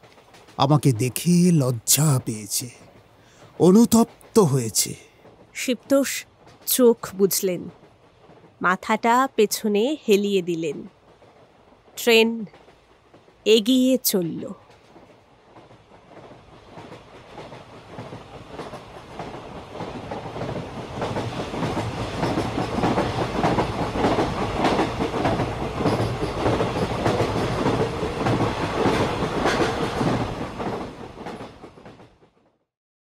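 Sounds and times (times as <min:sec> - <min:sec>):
train wheels clickety-clack: 0:00.0 - 0:32.5.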